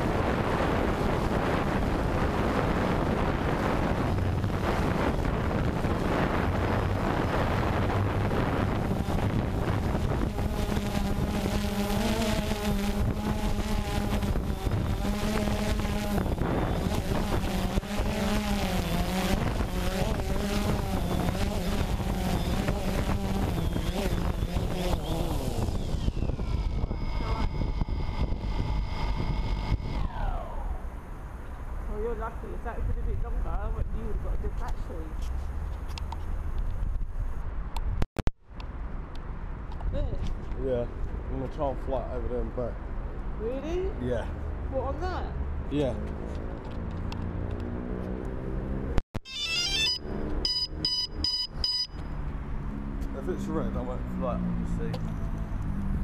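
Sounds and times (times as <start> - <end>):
drone propellers buzzing: 0.0 - 31.9, 44.6 - 56.0
wind on microphone: 0.0 - 38.0.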